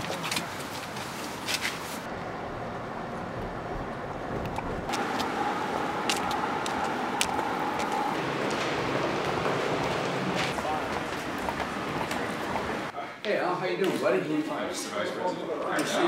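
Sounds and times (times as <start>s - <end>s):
footsteps clicking: 6.0s - 12.9s.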